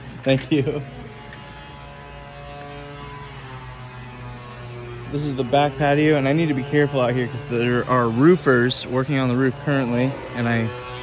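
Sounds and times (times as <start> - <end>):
mechanical hum: 0.0 - 11.0.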